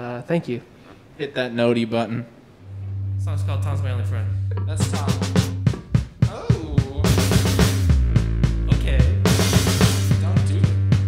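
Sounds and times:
sustained guitar tones: 2.6s - 11.0s
cymbals: 2.7s - 11.0s
drum kit kick and snare: 4.6s - 11.0s.

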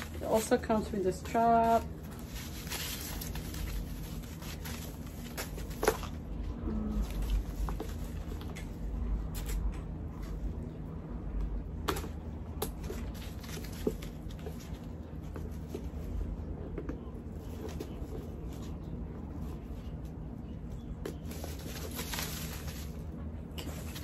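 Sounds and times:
plastic packaging rustling: 0.0s - 8.7s, 12.7s - 16.1s, 21.0s - 24.0s.

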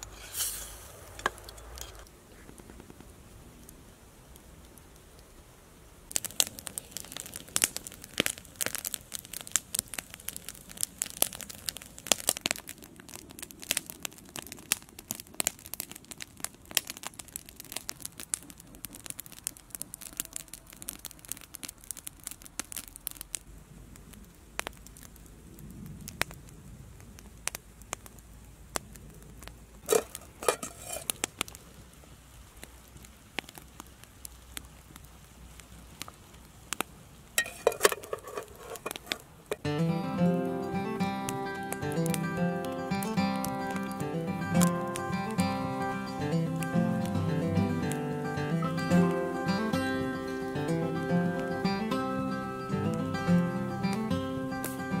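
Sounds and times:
campfire crackling and popping: 0.0s - 55.0s.

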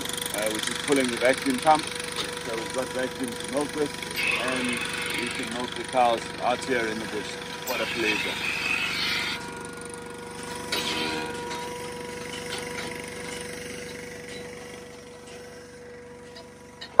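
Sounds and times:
generator engine running: 0.0s - 17.0s
vacuum pump whine: 0.0s - 17.0s.

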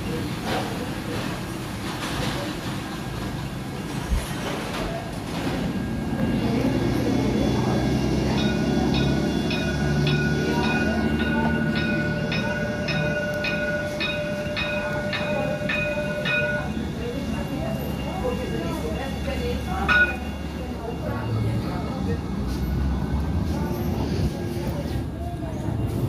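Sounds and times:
tram rumbling: 0.0s - 26.0s
warning bell ringing rapidly: 8.2s - 21.4s.

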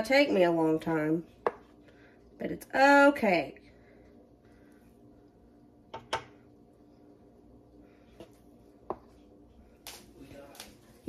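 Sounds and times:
faint steady hum: 0.0s - 11.0s
spoon tapping bowl and griddle: 5.9s - 6.3s.

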